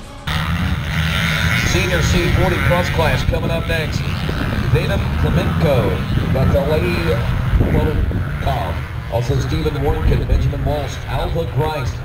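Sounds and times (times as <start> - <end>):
music: 0.0 - 0.3
motorcycle engines idling: 0.3 - 12.0
announcer speaking over loudspeaker: 1.4 - 12.0.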